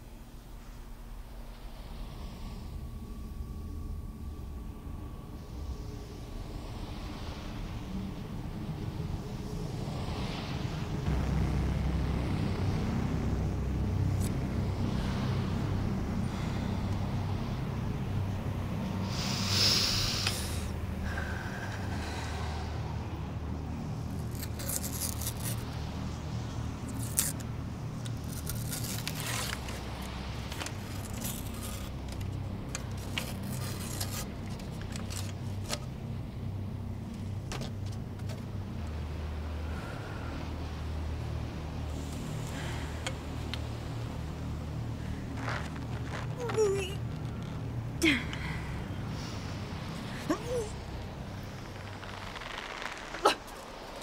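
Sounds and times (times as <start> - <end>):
low steady rumble: 0.0 - 54.0
steady low hum: 0.0 - 54.0
fingers rustling a card: 28.0 - 35.9.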